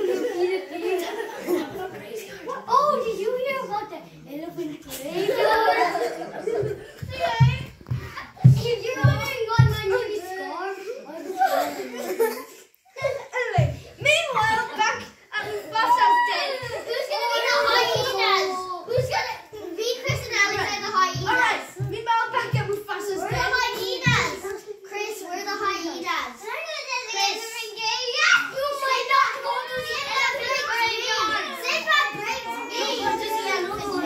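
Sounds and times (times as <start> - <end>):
young children chattering: 0.0 - 34.0
children calling out: 13.3 - 22.0, 25.8 - 34.0.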